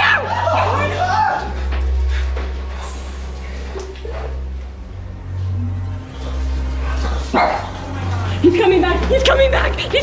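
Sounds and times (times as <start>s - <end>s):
low droning music: 0.0s - 10.0s
small dog barking: 7.4s - 7.7s.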